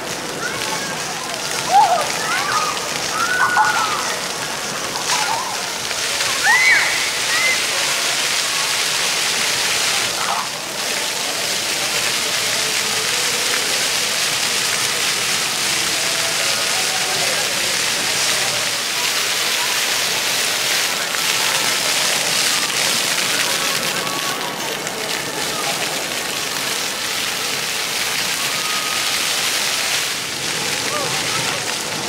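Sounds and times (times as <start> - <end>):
faint voices: 0.0 - 32.0
fountain jets splashing on pavement: 0.0 - 32.0.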